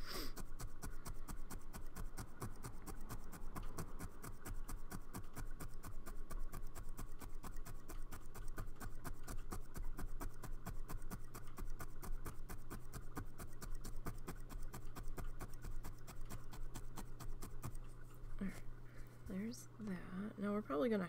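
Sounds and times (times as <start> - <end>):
felting needle jabbing felt: 0.0 - 20.6
steady low hum: 0.0 - 21.0.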